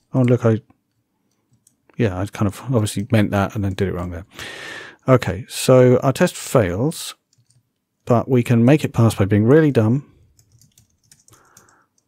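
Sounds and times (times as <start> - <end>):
keyboard typing: 0.0 - 2.0, 7.2 - 7.9, 10.2 - 12.0.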